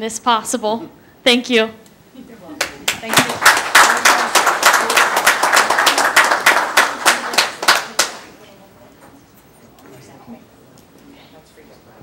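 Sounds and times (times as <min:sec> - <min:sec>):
people clapping: 0:02.6 - 0:08.4.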